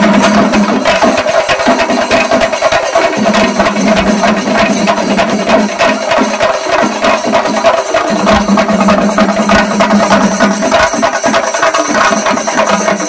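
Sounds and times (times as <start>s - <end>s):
drums beaten with sticks: 0.0s - 13.0s.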